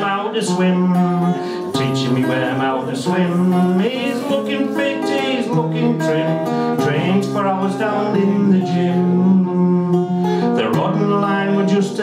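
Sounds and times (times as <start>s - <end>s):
acoustic guitar strummed: 0.0s - 12.0s
man singing long notes: 0.0s - 12.0s.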